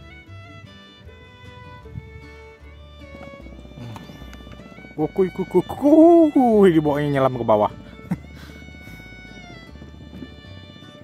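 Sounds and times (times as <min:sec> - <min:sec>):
soft sustained background music: 0:00.0 - 0:11.0.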